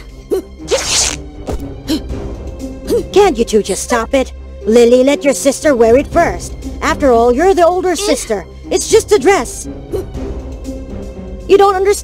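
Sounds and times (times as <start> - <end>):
background music: 0.0 - 12.0
fabric tearing: 0.7 - 1.2.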